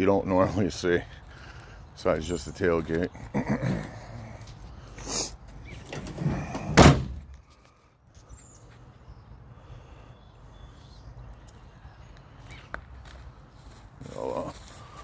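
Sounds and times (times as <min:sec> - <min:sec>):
loud thump: 0:06.7 - 0:07.3.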